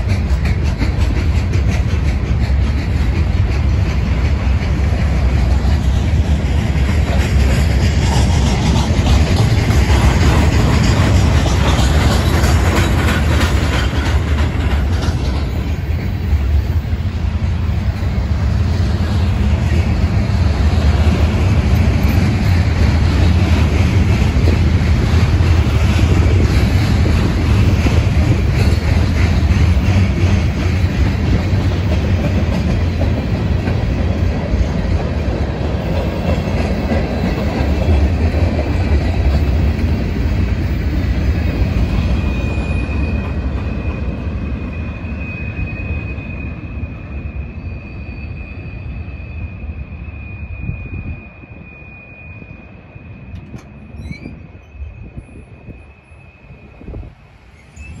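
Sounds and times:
freight train rolling past: 0.0s - 58.0s
high wheel squeal: 39.4s - 58.0s.

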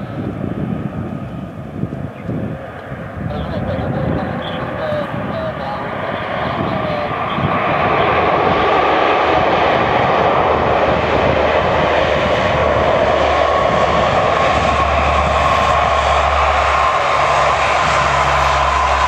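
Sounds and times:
engine whine: 0.0s - 19.0s
turboprop engines and propellers: 0.0s - 19.0s.

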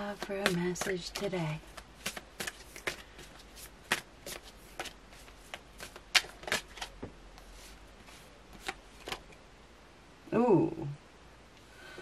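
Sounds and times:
cards being shuffled: 0.0s - 9.3s.

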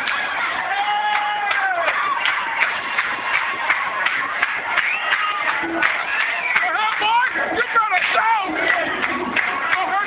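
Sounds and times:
crowd din of voices: 0.0s - 10.0s.

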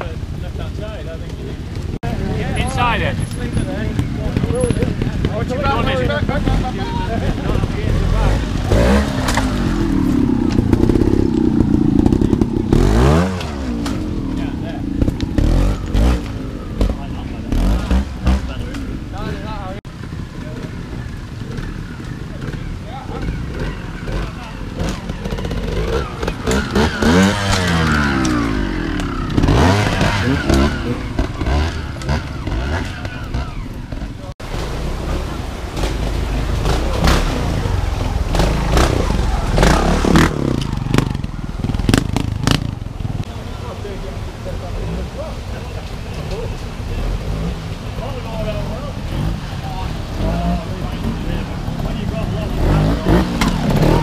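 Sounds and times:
motorcycle engines revving: 0.0s - 54.0s.

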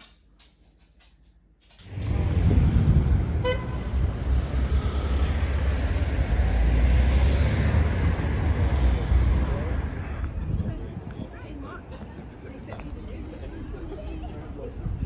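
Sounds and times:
wind buffeting microphone: 1.8s - 15.0s.

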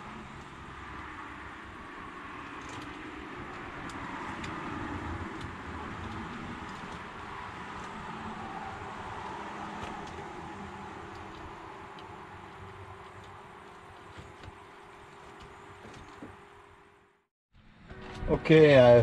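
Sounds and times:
wires rustling: 0.0s - 17.0s.

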